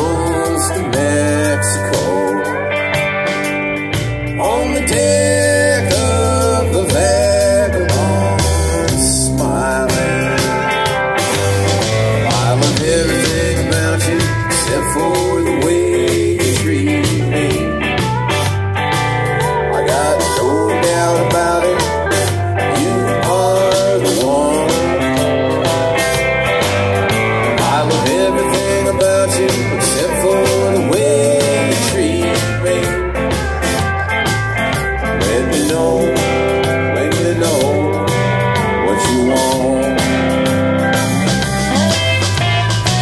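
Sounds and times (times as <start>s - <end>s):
drum kit: 0.0s - 43.0s
electric guitars: 0.0s - 43.0s
keyboard: 0.0s - 43.0s
lead guitar bending notes: 0.0s - 43.0s
low bass line: 0.0s - 43.0s.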